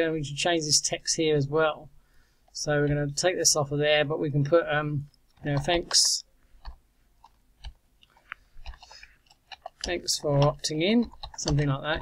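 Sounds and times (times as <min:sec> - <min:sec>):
keyboard keys clicking: 0:06.6 - 0:12.0.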